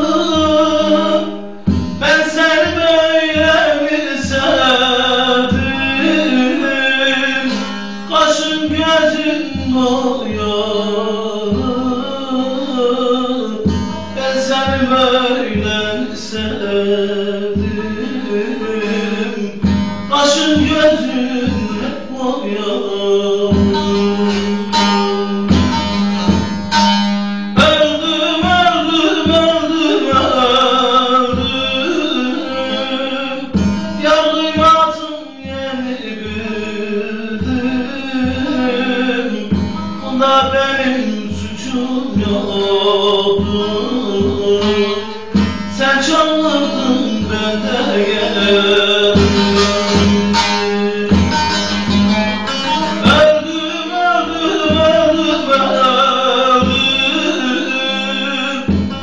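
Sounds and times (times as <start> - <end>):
long-necked lute plucked and strummed: 0.0 - 59.0
man singing a folk song: 0.0 - 59.0.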